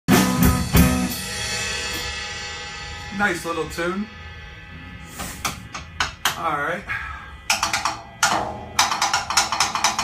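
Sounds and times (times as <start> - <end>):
drum kit hits: 0.1 - 6.8, 7.4 - 10.0
low amplifier hum: 1.9 - 9.4.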